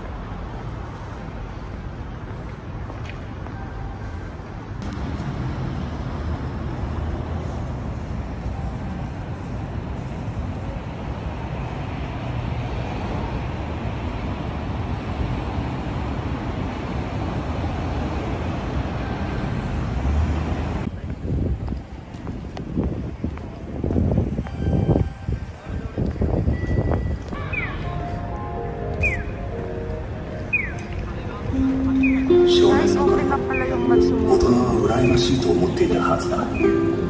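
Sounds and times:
city traffic: 0.0 - 37.0
wind on microphone: 20.9 - 27.6.

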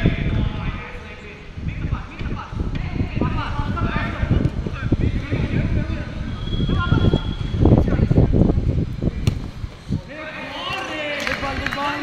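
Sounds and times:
low microphone rumble: 0.0 - 10.1.

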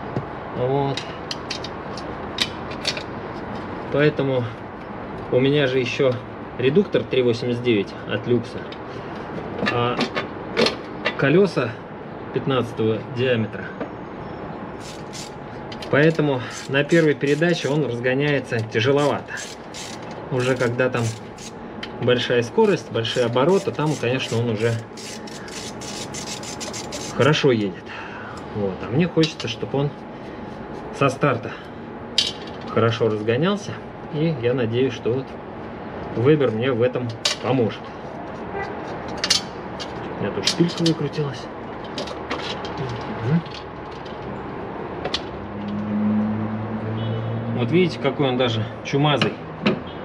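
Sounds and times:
steady background hum: 0.0 - 45.8
air filter scraping rustles: 18.4 - 21.6.

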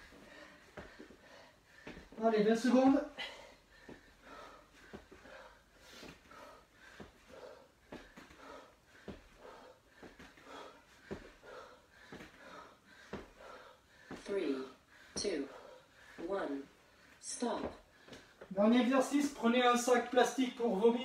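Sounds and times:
man breathing hard: 0.0 - 2.2, 3.1 - 17.2.

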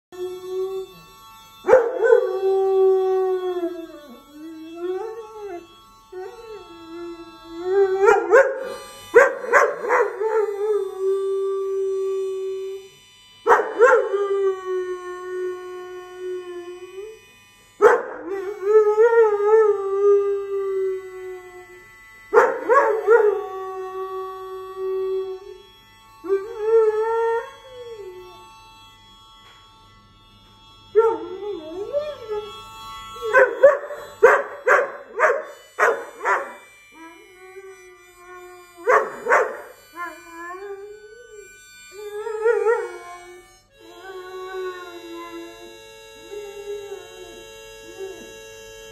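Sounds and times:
music: 0.1 - 48.9
dog howling: 1.7 - 12.9, 13.5 - 17.2, 17.8 - 21.8, 22.4 - 28.4, 31.0 - 48.5.

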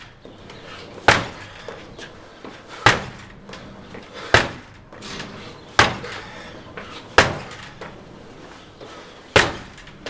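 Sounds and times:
kicks banging against door: 1.0 - 2.1, 2.8 - 6.5, 7.1 - 8.0, 9.3 - 10.0.

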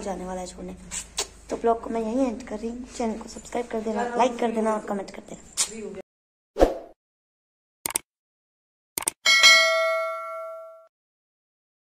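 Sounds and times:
bright bell ding: 9.3 - 10.9.

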